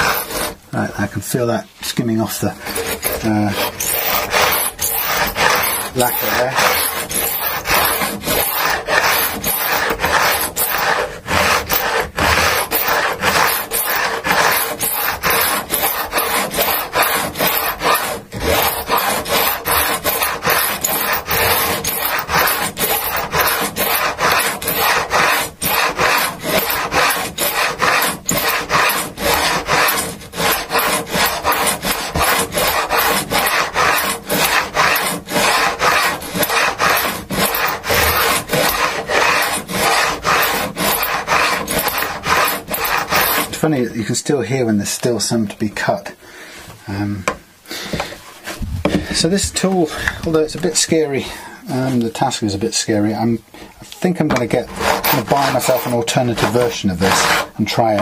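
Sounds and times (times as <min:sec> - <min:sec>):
file rasping on metal frets: 0:00.0 - 0:00.6, 0:02.3 - 0:43.8, 0:54.2 - 0:58.0.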